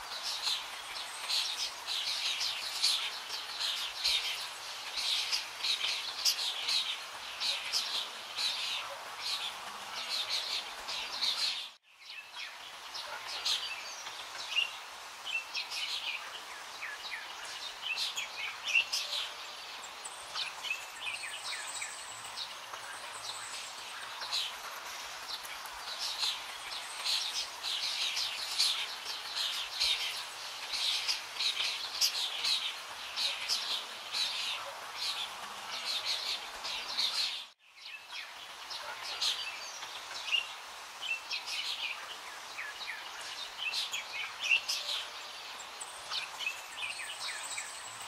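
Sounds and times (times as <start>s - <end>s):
small birds chirping: 0.0s - 48.0s
steady background hiss: 0.0s - 48.0s.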